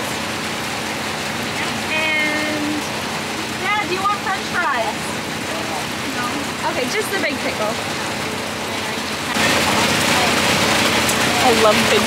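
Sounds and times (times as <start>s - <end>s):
heavy rain hissing: 0.0s - 12.0s
voices speaking: 1.3s - 12.0s.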